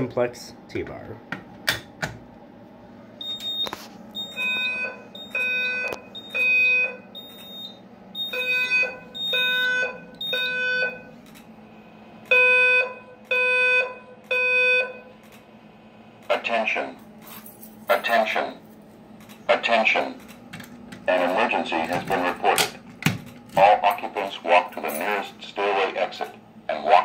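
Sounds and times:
low buzzy alarm tone pulses: 4.2 - 16.2.

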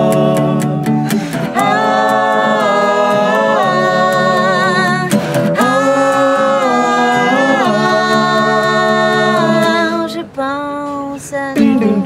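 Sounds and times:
voices singing in harmony: 0.0 - 10.6, 11.2 - 12.0
faint acoustic guitar: 0.0 - 12.0.

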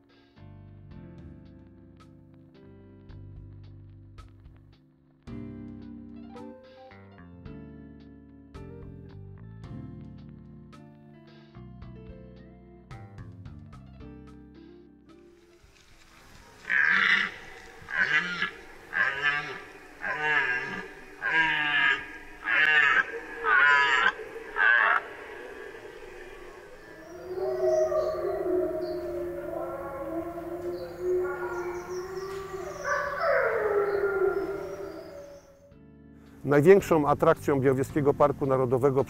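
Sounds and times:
wavering howl-like call: 16.0 - 35.7
short high animal calls: 16.6 - 35.6.

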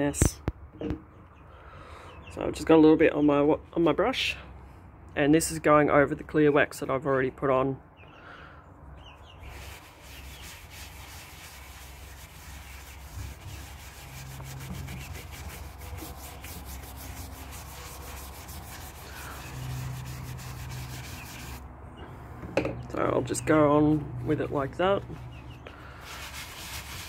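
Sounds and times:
wax brush rubbing wood: 9.4 - 21.6, 26.0 - 27.0.

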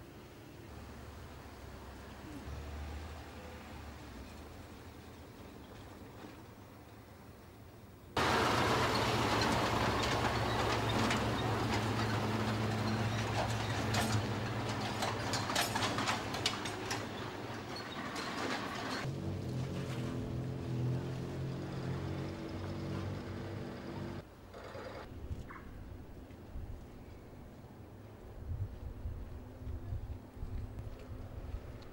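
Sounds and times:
truck engine running: 8.2 - 24.2
vehicle rattling and clattering: 8.2 - 24.3.

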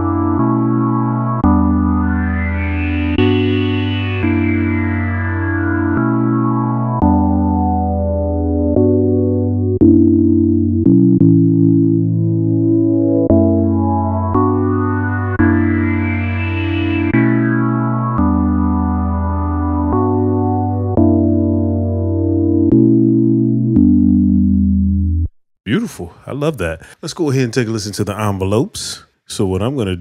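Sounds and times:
synthesizer chords with filter sweep: 0.0 - 25.3.

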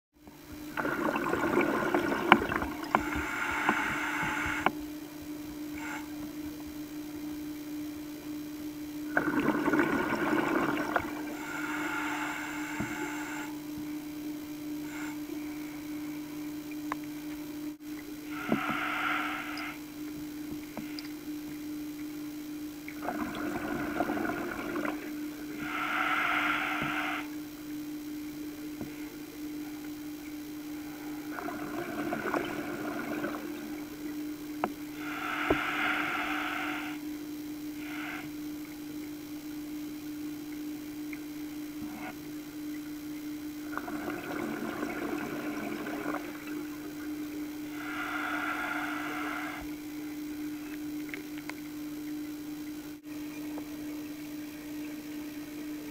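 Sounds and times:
steady low hum: 0.2 - 55.9
exhaled bubbles rushing: 0.6 - 4.0, 9.1 - 11.4, 23.0 - 25.2, 31.2 - 34.5, 43.6 - 47.8
regulator inhalation hiss: 1.7 - 4.7, 10.8 - 13.6, 18.2 - 19.9, 23.1 - 27.4, 34.9 - 37.1, 37.7 - 38.5, 47.6 - 49.7.

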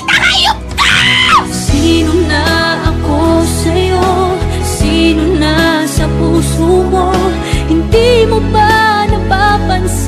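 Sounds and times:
woman screaming: 0.0 - 1.6.

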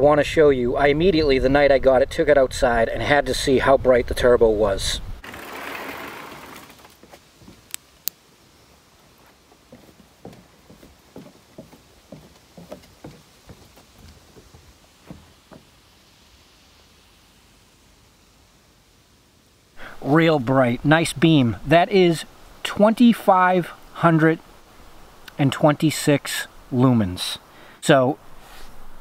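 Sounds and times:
soft scuffs and rustles: 6.9 - 7.8, 8.7 - 15.8.

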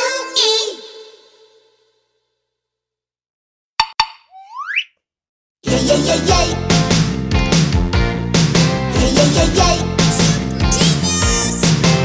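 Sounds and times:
upbeat children's pop song: 5.7 - 12.0.

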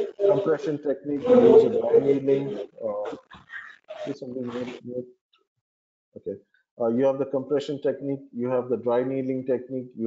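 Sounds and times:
man making hesitant speech sounds: 0.0 - 3.2, 4.0 - 5.0, 6.2 - 10.0.

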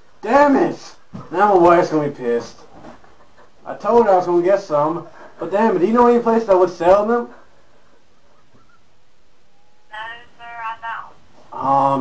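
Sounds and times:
person answering on phone: 9.9 - 11.8.

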